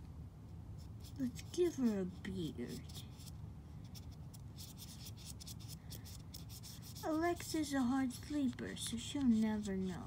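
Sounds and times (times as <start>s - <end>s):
marker rubbing on plastic: 0.5s - 10.0s.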